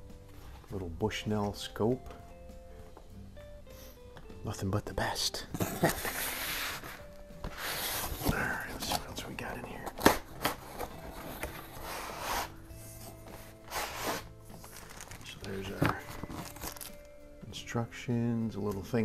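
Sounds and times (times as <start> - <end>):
cardboard and paper rustling: 5.6 - 17.0.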